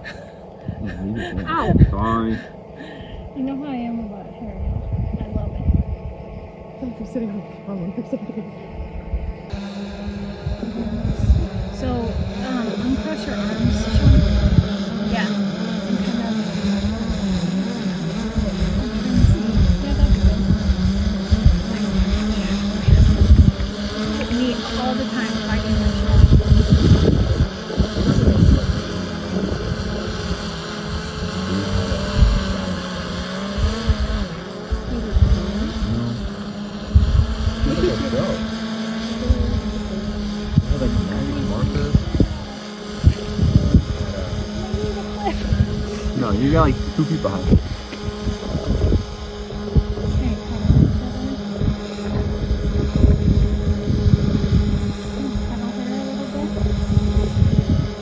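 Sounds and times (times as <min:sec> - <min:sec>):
drone propellers humming: 0:00.0 - 0:58.0
wind on microphone: 0:00.0 - 0:58.0.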